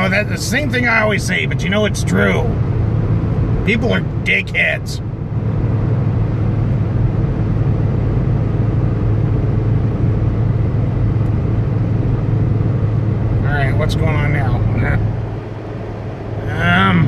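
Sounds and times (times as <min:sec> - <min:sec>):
car engine hum: 0:00.0 - 0:17.0
tyre and road noise: 0:00.0 - 0:17.0.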